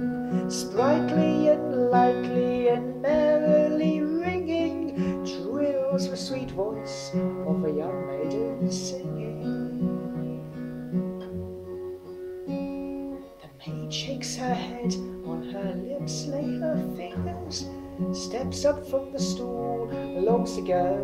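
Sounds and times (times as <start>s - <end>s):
person singing: 0.0s - 10.8s, 13.3s - 21.0s
acoustic guitar strumming: 0.0s - 21.0s.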